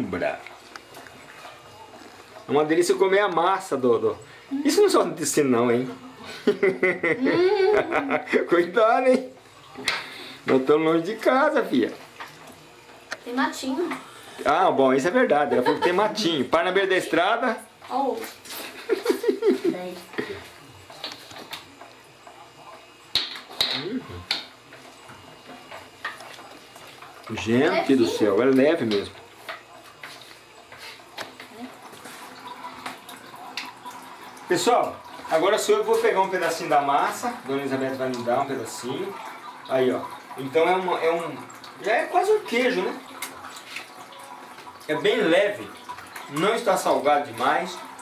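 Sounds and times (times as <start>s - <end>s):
liquid trickling: 0.0s - 48.0s
people laughing: 6.2s - 8.6s, 15.4s - 16.2s, 18.7s - 19.8s
soft voices: 23.8s - 24.3s.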